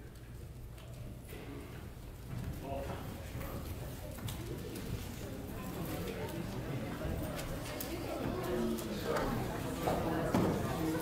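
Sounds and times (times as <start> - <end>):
distant murmur of people talking: 0.0 - 11.0.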